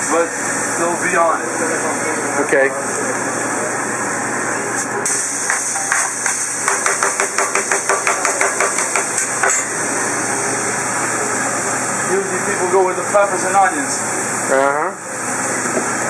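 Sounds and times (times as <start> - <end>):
metal spatula clacking on griddle: 5.5 - 9.7.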